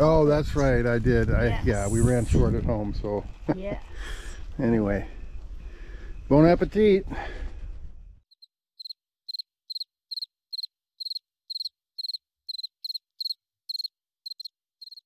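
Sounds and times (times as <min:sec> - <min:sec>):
campsite background noise: 0:00.0 - 0:08.2
cricket chirping: 0:08.3 - 0:15.0.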